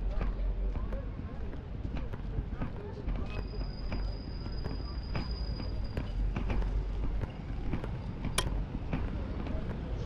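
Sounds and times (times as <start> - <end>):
passers-by talking: 0.0 - 10.0.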